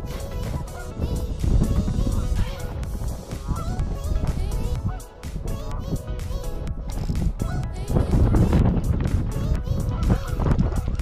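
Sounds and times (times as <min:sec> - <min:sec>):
music with steady beat: 0:00.0 - 0:11.0
geese honking: 0:00.1 - 0:05.2.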